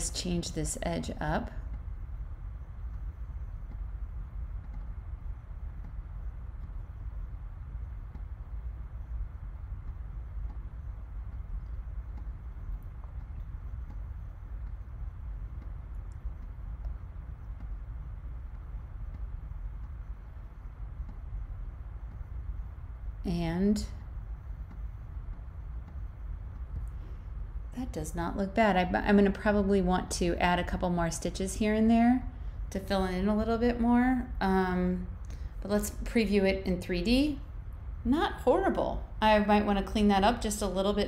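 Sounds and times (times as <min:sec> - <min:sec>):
low room noise rumble: 0:00.0 - 0:41.0
faint clicks: 0:01.6 - 0:22.9.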